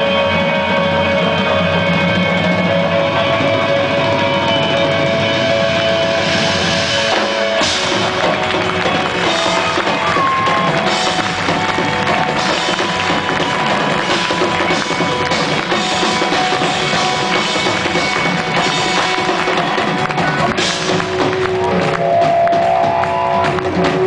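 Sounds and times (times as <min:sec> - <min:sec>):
drum kit beat: 0:00.0 - 0:24.0
rock chords ringing: 0:00.0 - 0:24.0.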